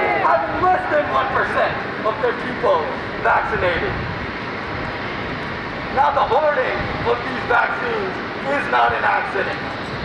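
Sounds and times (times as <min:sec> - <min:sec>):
urban background rush: 0:00.0 - 0:10.0.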